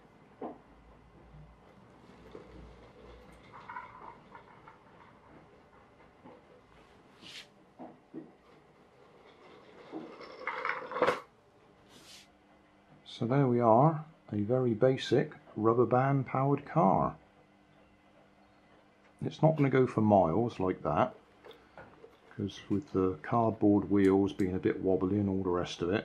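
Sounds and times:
toy car clicking and rattling: 2.8s - 5.1s.

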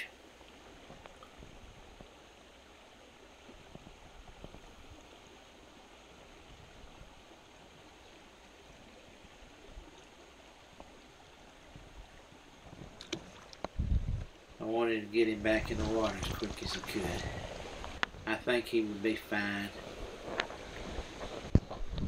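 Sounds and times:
stream running over rocks: 0.0s - 22.0s.

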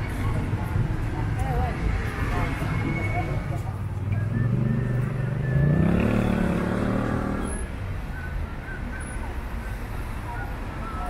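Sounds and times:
people talking: 0.0s - 4.6s
vehicle engine accelerating: 3.9s - 7.6s.

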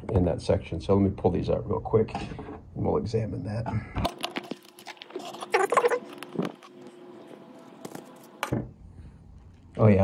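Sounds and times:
plastic crinkling: 4.1s - 7.0s.

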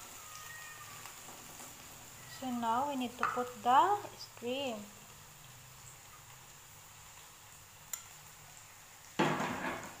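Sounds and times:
vegetables sizzling in frying pan: 0.0s - 10.0s.

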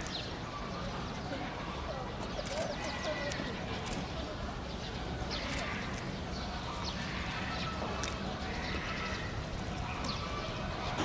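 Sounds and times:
panda chewing bamboo leaves: 5.4s - 10.2s.

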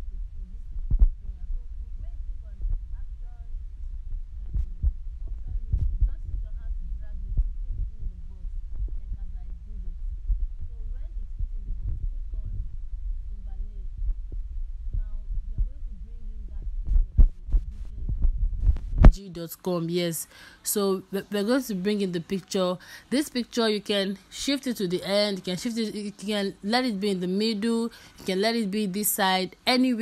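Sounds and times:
low dull thumps: 0.0s - 19.2s
steady low rumble: 0.0s - 19.8s
steady low hum: 0.0s - 30.0s.

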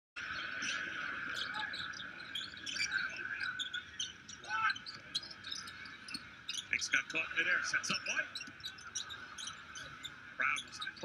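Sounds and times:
arena crowd din: 0.2s - 11.0s
sneakers squeaking on court: 1.4s - 6.8s, 7.8s - 11.0s.

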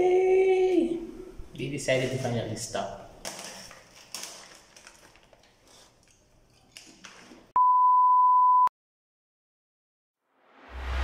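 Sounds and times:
electronic sine-tone beep: 7.6s - 8.7s.

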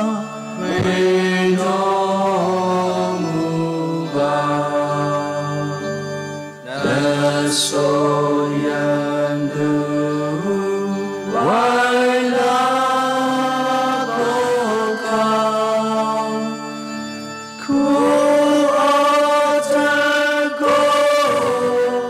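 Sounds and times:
devotional chant-like singing: 0.0s - 22.0s
sustained low accompaniment: 0.0s - 22.0s.

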